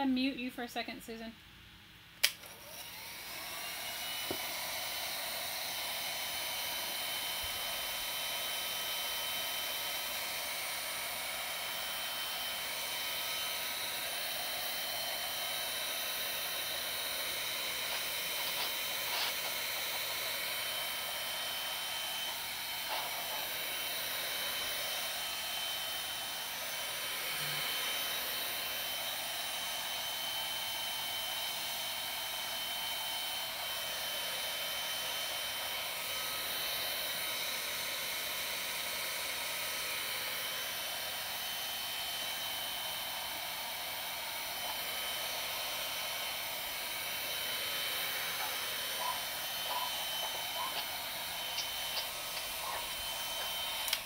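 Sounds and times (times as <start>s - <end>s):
heat gun switch click: 2.2s - 2.5s, 51.5s - 54.0s
heat gun blowing air: 2.2s - 54.0s
high fan motor whine: 2.2s - 54.0s.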